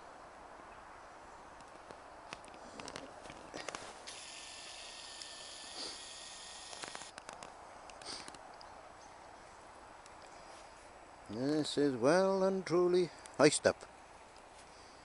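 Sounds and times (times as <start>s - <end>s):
crackles and light knocks: 1.6s - 4.1s, 6.7s - 8.7s
footsteps crunching in snow: 2.8s - 4.4s.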